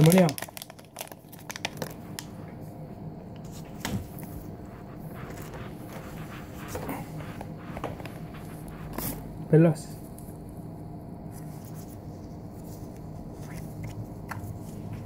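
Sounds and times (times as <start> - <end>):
plastic wrapper crinkling: 0.0 - 2.3.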